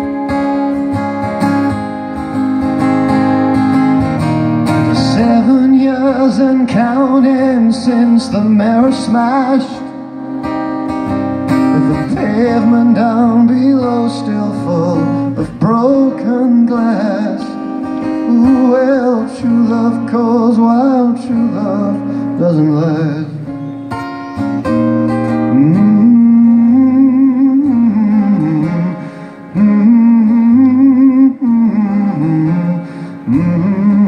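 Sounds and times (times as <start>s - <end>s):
strummed acoustic guitar: 0.0s - 34.0s
man singing long notes: 4.9s - 10.2s, 11.6s - 23.5s, 25.4s - 34.0s.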